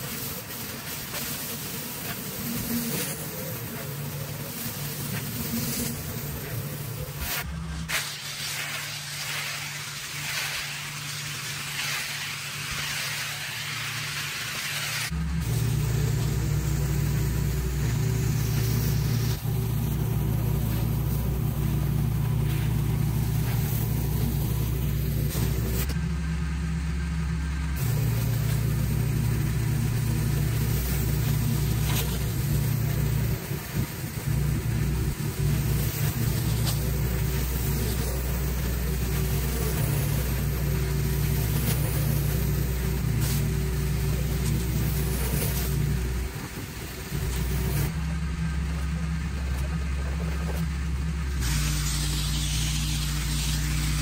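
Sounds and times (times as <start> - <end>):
water spray hissing on concrete: 0.0 - 26.0, 27.8 - 48.0, 50.4 - 54.0
pressure washer engine humming: 0.0 - 54.0.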